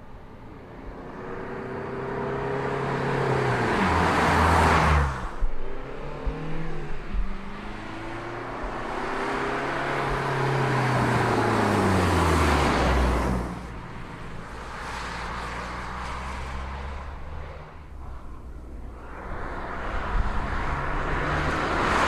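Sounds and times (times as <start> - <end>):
car driving past: 0.6 - 22.0.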